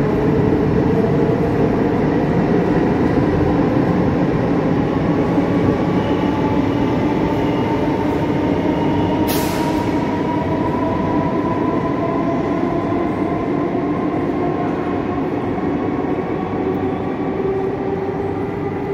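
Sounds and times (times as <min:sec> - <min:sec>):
electric train rumbling and whining: 0:00.0 - 0:18.9.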